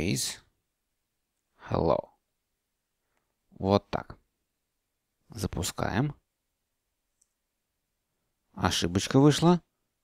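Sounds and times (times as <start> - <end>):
person speaking: 0.0 - 0.6, 1.4 - 2.3, 3.1 - 4.3, 5.2 - 6.3, 8.4 - 10.0.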